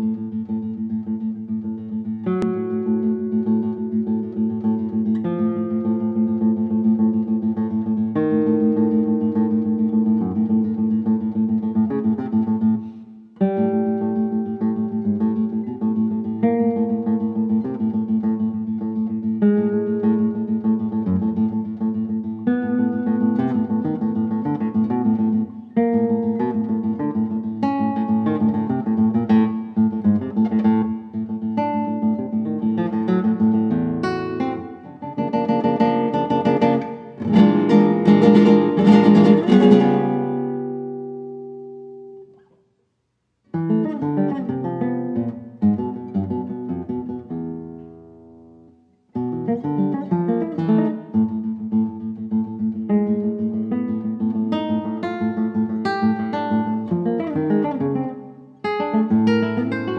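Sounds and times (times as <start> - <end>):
classical guitar playing: 0.0 - 42.7, 43.4 - 59.9.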